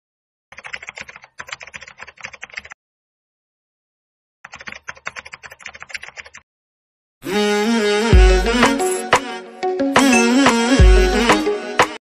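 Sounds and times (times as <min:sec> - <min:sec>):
keyboard typing clicks: 0:00.5 - 0:02.8, 0:04.5 - 0:06.4.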